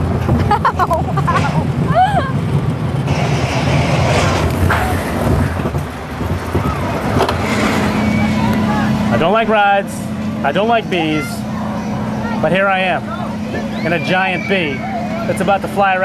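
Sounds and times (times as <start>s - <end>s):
roller coaster rumble: 0.0s - 16.0s
riders yelling: 7.7s - 9.6s, 10.2s - 16.0s.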